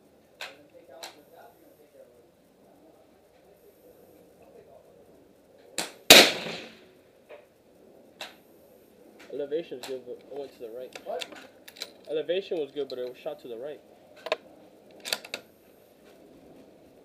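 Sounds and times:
suppressed rifle shot: 5.8 - 6.9.

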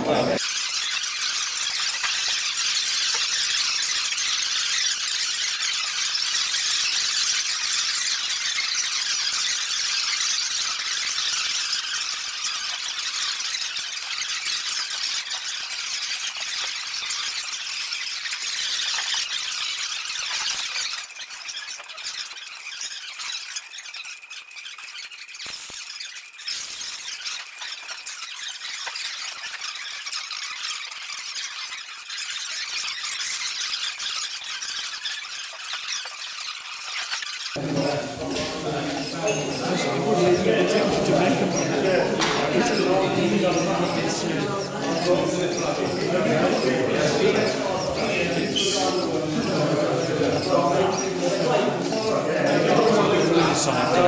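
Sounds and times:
high-pitched squealing motor chatter: 0.0 - 54.0.

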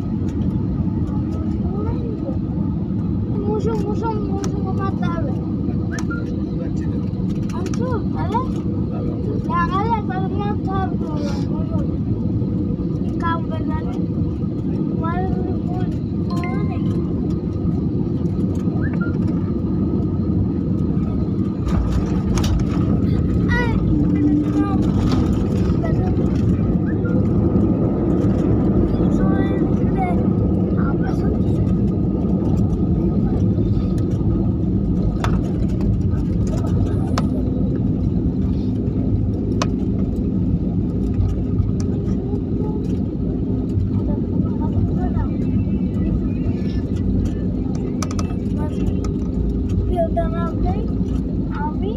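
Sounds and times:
airliner engines roaring: 0.0 - 51.9
faint voices: 0.8 - 51.9.

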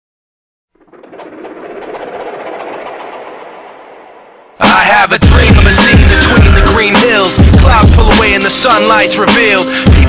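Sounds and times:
rushing noise: 0.7 - 6.6.

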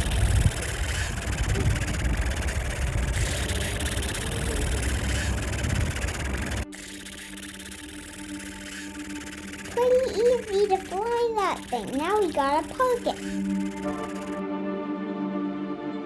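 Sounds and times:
helicopter rotor beating: 0.0 - 14.4.

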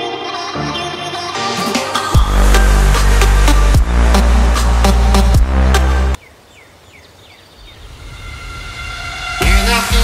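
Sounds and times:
electronic dance music: 0.0 - 6.2, 9.4 - 10.0
bird chirping: 6.2 - 8.7.

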